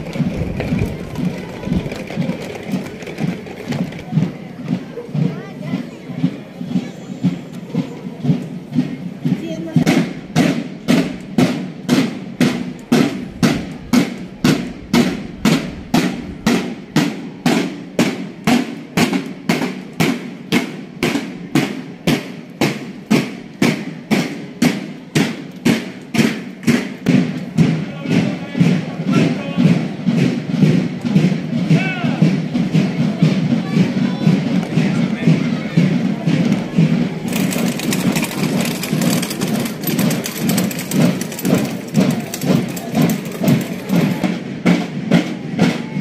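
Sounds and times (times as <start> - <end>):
marching snare drums: 0.0 - 46.0.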